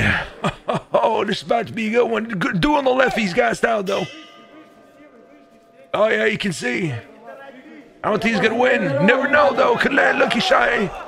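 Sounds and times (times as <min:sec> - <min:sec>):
boxing bell ringing: 0:03.0 - 0:11.0.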